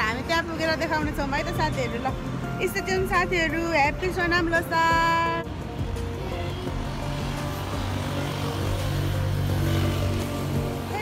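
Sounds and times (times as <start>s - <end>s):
background music: 0.0s - 11.0s
vehicle engine rumble passing: 5.0s - 11.0s.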